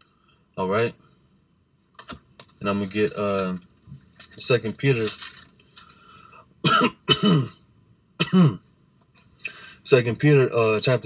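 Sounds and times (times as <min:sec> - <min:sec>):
man clearing his throat: 0:06.6 - 0:07.6, 0:08.2 - 0:08.6.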